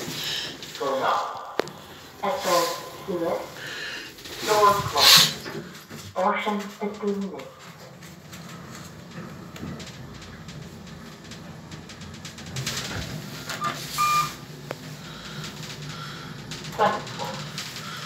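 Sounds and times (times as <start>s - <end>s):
lift ride hum: 0.0s - 18.0s.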